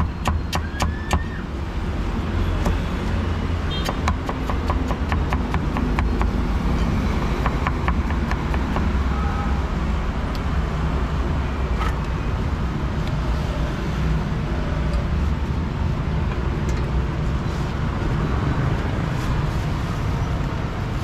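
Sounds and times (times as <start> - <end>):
low rumble of street traffic: 0.0 - 21.0.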